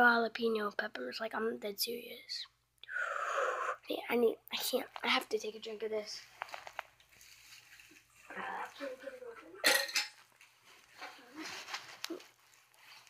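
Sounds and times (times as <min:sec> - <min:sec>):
dishware clattering: 0:09.6 - 0:10.3.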